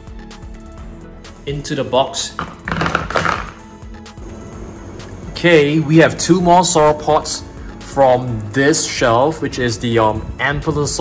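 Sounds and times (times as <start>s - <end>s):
background music with held notes: 0.0s - 11.0s
plastic toys dropped into tub: 2.4s - 3.6s.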